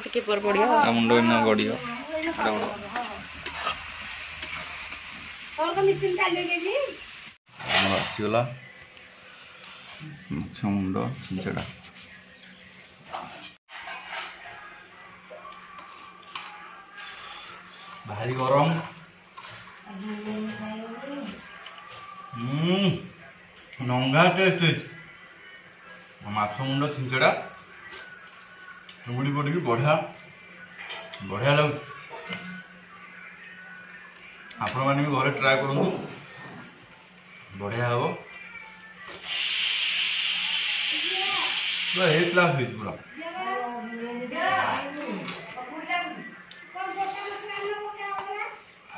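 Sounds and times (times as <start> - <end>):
loud steady hiss: 39.2 - 42.6.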